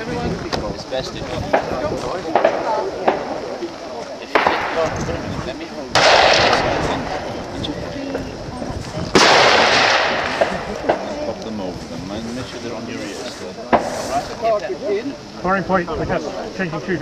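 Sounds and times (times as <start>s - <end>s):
rifle shots echoing: 4.3s - 4.9s, 6.0s - 7.3s, 9.2s - 11.1s.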